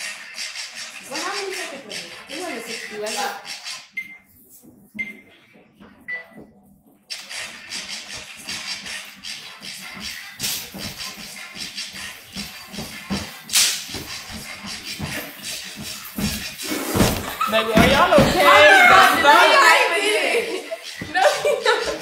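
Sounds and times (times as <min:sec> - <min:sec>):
song playing: 0:07.1 - 0:22.0.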